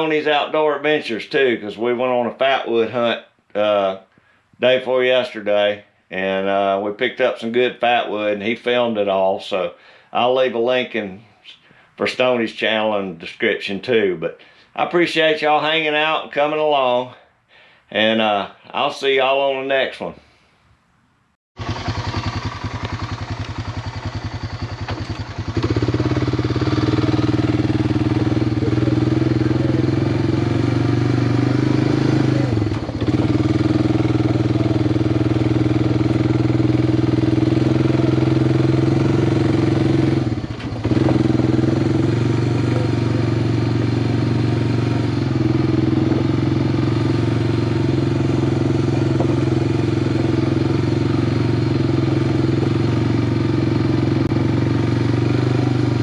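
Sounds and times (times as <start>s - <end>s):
quad bike engine running: 21.6s - 56.0s.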